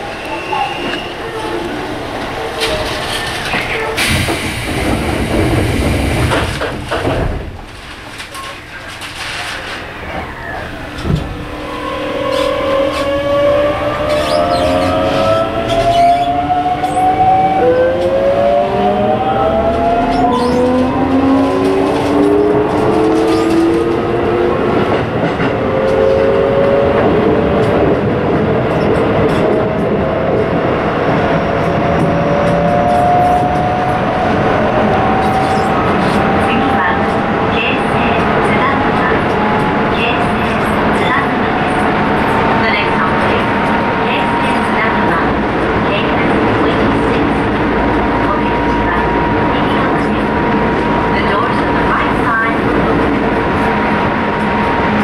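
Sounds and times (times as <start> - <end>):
wheels rumbling on rail: 0.0 - 55.0.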